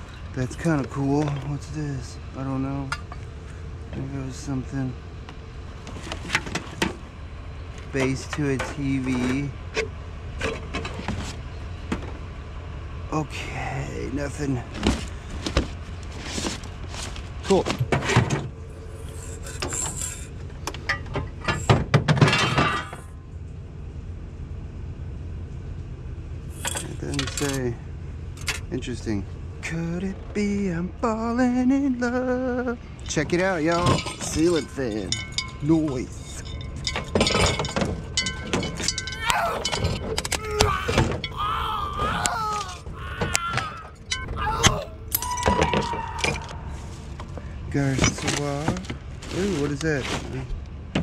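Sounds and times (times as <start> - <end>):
steady low hum: 0.0 - 45.3
scrap clattering: 20.8 - 23.1, 33.6 - 40.4
metal and glass clinking: 22.2 - 23.1, 33.6 - 40.4, 44.0 - 44.4
creaking and cracking of blades: 33.1 - 47.4.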